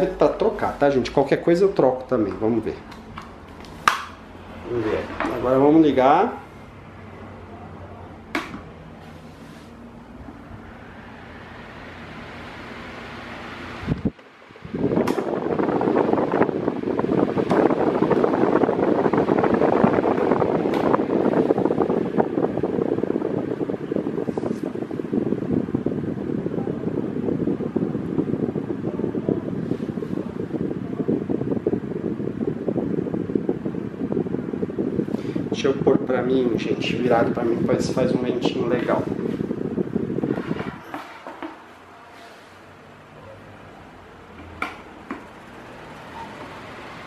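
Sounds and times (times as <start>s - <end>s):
electric fan whooshing: 0.0s - 47.0s.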